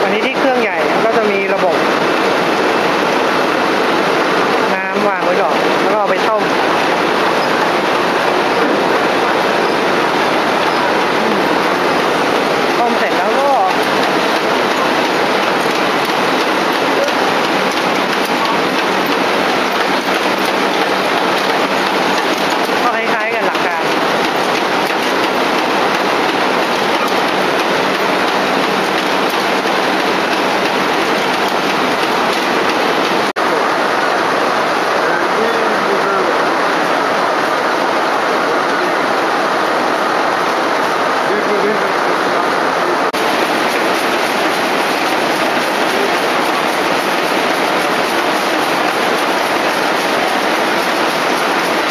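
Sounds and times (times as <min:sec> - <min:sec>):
reeling machine running: 0:00.0 - 0:36.5, 0:43.2 - 0:51.9.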